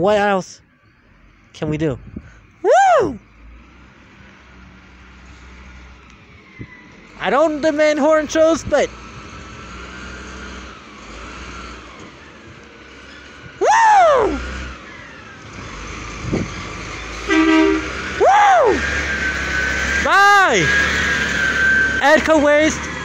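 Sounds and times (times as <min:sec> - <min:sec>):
truck diesel engine rumble: 0:00.0 - 0:23.0
truck whine: 0:00.0 - 0:23.0
person whooping: 0:02.6 - 0:03.2, 0:13.6 - 0:14.4, 0:18.2 - 0:18.8
truck horn toot: 0:17.2 - 0:19.7.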